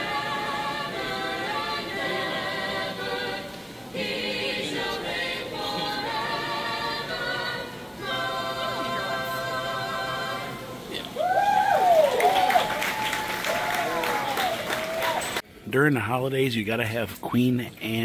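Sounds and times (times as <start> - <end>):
choir singing in harmony: 0.0 - 11.1.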